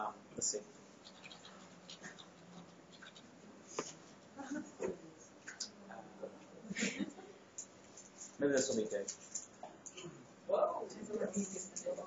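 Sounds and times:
faint keyboard typing: 1.0 - 4.0.

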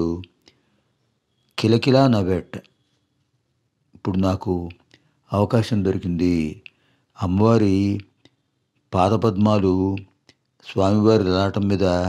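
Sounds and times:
man lecturing: 0.0 - 0.4, 1.6 - 2.7, 4.0 - 8.3, 8.9 - 12.0.

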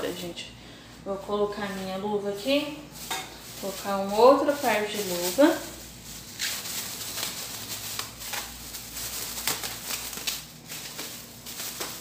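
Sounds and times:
plastic gloves crinkling: 0.0 - 12.0.

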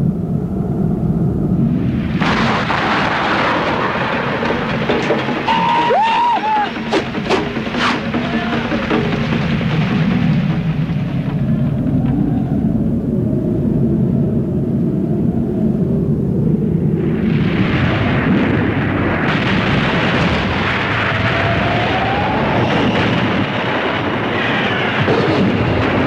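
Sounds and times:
war sound effects roar: 2.2 - 13.4, 17.5 - 26.0.

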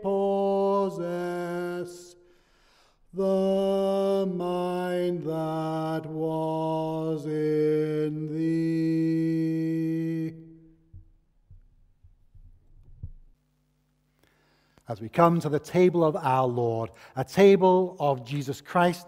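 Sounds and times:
hymn singing: 0.0 - 11.1, 14.9 - 19.0.

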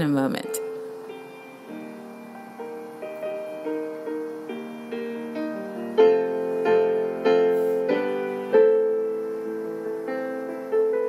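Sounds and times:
piano playing slow chords: 0.0 - 11.0.

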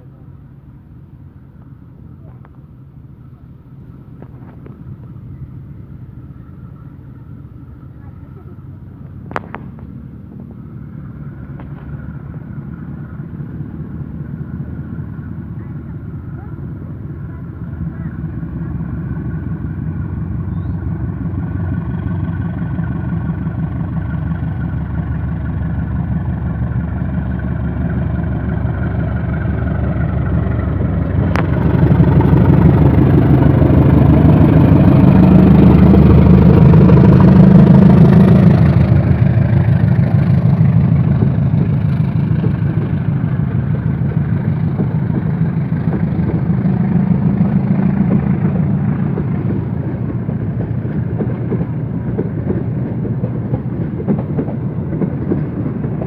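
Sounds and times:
diesel locomotive engine drone: 0.0 - 56.0
train coaches rolling: 0.0 - 56.0.

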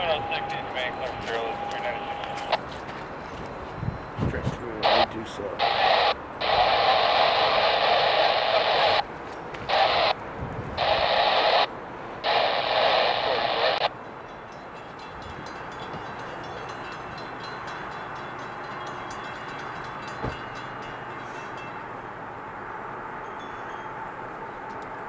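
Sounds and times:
crackly radio transmissions: 0.0 - 14.0
low background noise: 0.0 - 25.0.

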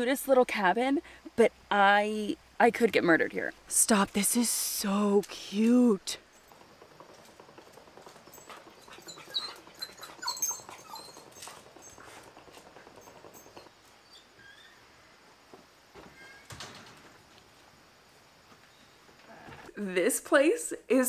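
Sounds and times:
screen door rattling: 5.4 - 14.9, 15.8 - 17.9
dog whining: 8.2 - 14.8.

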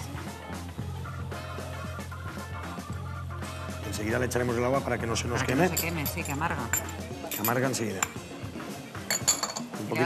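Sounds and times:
background music: 0.0 - 10.0
spoon clinking on ceramic dish: 5.6 - 8.2, 9.0 - 9.8.

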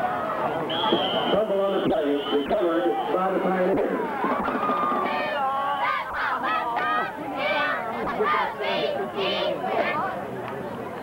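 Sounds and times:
crowd shouting: 0.0 - 10.3
referee's whistle: 0.5 - 3.2.

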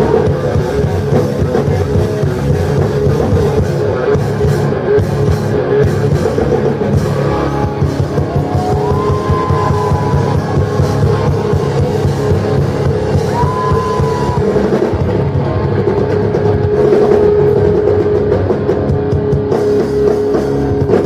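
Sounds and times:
electric guitar lead line: 0.0 - 21.0
rock band playing live: 0.0 - 21.0.

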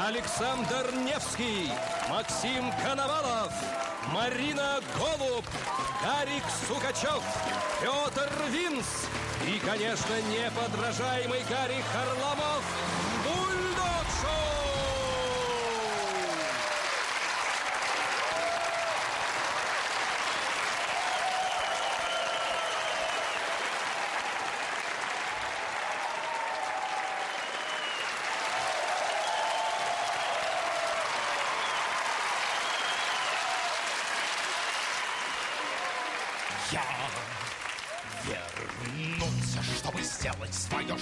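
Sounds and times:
shouts and cheers: 0.0 - 8.9, 10.6 - 19.6, 20.3 - 38.5, 39.1 - 40.8
audience applauding: 0.0 - 41.0.

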